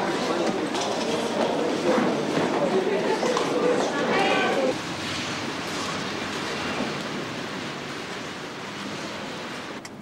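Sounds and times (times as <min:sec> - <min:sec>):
distant traffic: 0:00.0 - 0:10.0.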